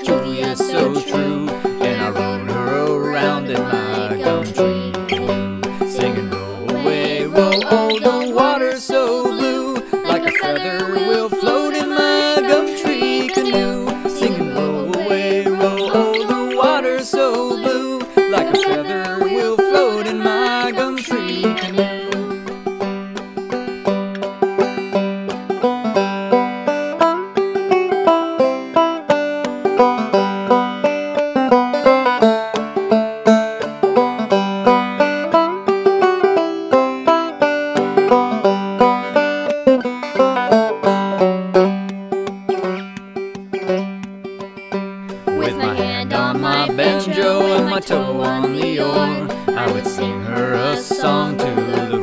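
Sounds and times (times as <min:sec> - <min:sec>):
banjo playing: 0:00.0 - 0:52.0.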